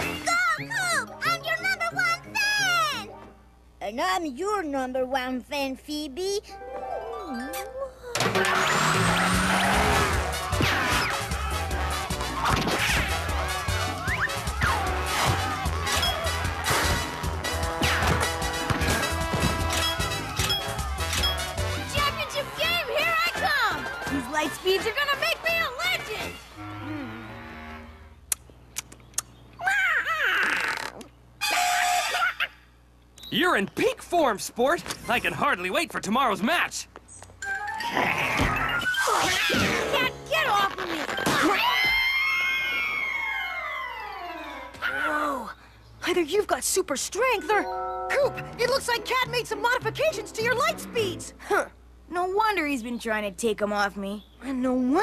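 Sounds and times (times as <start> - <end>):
upbeat cartoon music: 0.0 - 3.3, 6.6 - 26.5, 47.4 - 51.4
cartoon crash effects with glide: 8.2 - 11.2
cartoon cat screeching: 29.6 - 32.6, 37.8 - 45.2.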